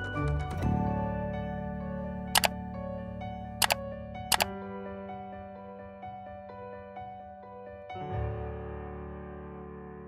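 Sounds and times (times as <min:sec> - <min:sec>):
soft background music: 0:00.0 - 0:09.6
mouse click sound effect: 0:03.6 - 0:04.5.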